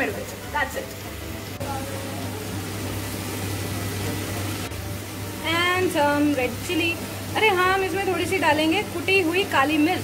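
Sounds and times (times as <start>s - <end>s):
vegetables frying hiss: 0.0s - 10.0s.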